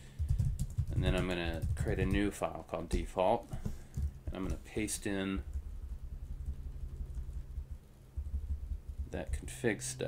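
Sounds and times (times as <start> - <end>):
steady low hum: 0.0 - 10.0
low uneven rumble: 3.5 - 10.0.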